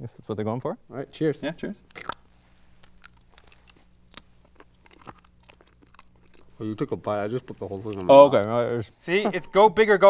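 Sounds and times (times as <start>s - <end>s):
low steady hum: 0.0s - 10.0s
mouth clicks and smacks chewing: 2.8s - 6.9s.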